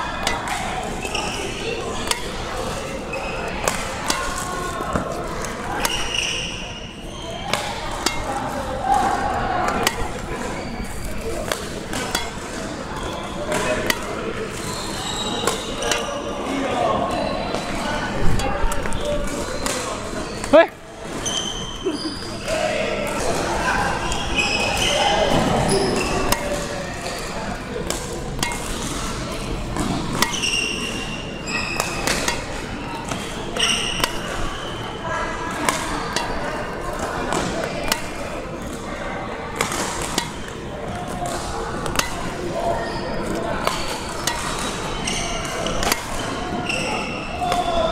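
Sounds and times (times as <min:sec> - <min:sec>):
rackets hitting shuttlecocks: 0:00.0 - 0:21.4, 0:22.4 - 0:47.9.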